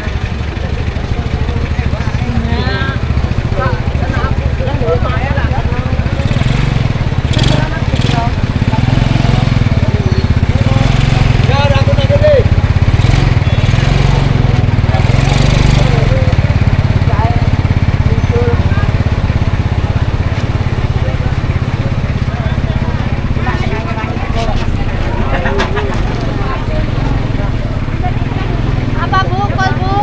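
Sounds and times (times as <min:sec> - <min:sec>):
people talking: 0:00.0 - 0:30.0
small motorcycle engine running: 0:00.0 - 0:30.0.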